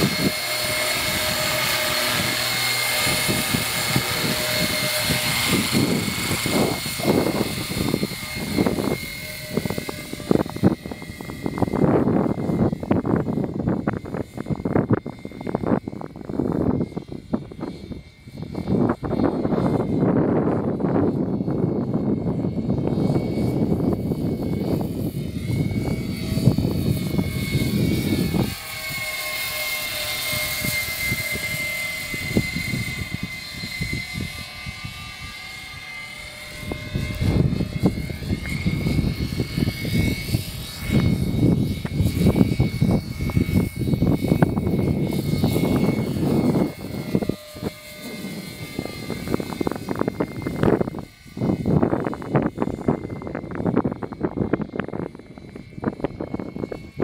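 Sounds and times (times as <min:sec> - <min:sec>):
model aircraft rotor whine: 0:00.0 - 0:57.0
wind rumble on microphone: 0:00.0 - 0:57.0.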